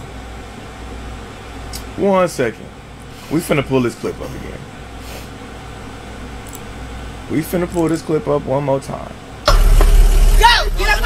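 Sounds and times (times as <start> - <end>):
strong low hum: 9.5 - 11.0
man's voice: 10.3 - 11.0.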